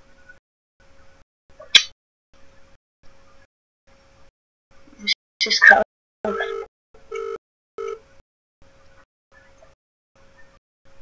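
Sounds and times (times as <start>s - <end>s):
phone line noise with hum: 4.7s - 11.0s.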